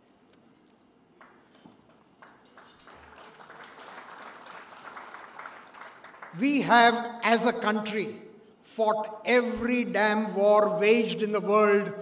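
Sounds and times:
audience applause: 0:02.2 - 0:06.4
person giving a speech: 0:06.3 - 0:12.0.

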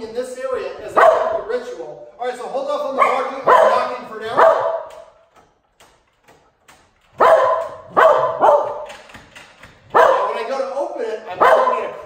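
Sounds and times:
dog barking: 0:00.9 - 0:01.5, 0:03.0 - 0:05.1, 0:07.2 - 0:08.9, 0:09.9 - 0:10.5, 0:11.4 - 0:12.0.

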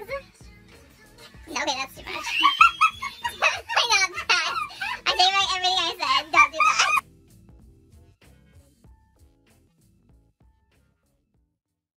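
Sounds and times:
faint quiet music: 0:00.0 - 0:07.0
person squealing: 0:02.2 - 0:05.2, 0:06.2 - 0:07.0.

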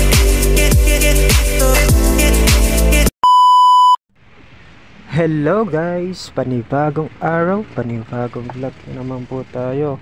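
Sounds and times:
steady high test-tone beep: 0:03.2 - 0:04.0.

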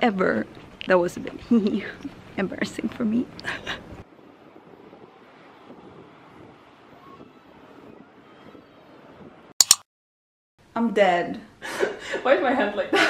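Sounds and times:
sharp clicks: 0:09.6 - 0:09.9.

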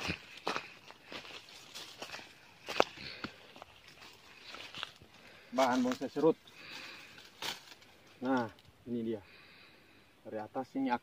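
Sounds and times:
plants brushing against legs: 0:00.0 - 0:08.6
footsteps on dry leaves and stones: 0:00.0 - 0:08.7.

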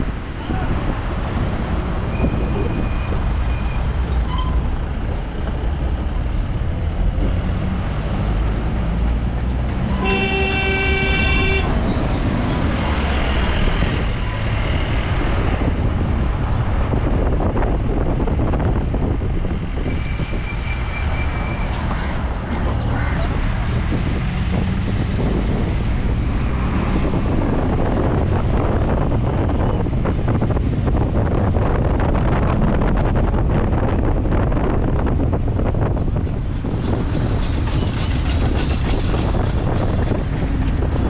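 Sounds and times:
vehicle road and engine rumble: 0:00.0 - 0:41.0
vehicle horn: 0:09.8 - 0:11.8
short horn toots: 0:09.9 - 0:11.8.

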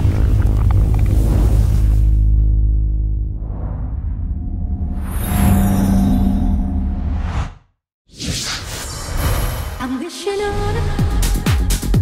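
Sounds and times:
deep bass rumble: 0:00.0 - 0:05.2.

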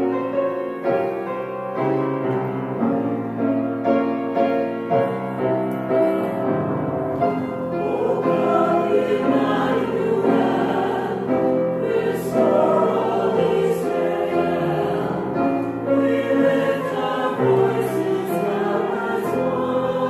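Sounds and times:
choir singing: 0:04.9 - 0:20.0.

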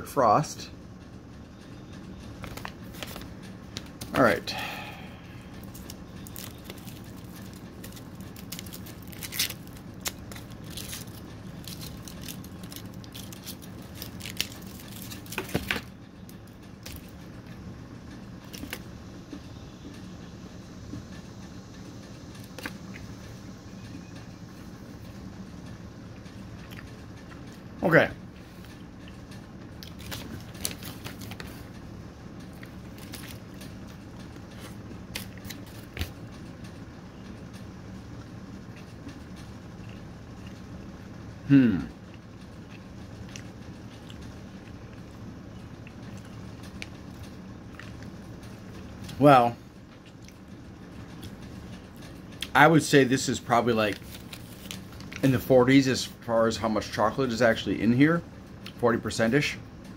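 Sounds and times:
steady low hum: 0:00.0 - 0:59.9
chocolate wrapper crinkling: 0:05.6 - 0:15.9, 0:29.8 - 0:31.6, 0:53.2 - 0:55.5.

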